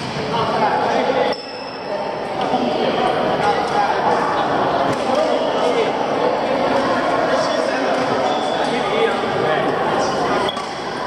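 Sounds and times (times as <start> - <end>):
indistinct voices echoing: 0.0 - 11.0.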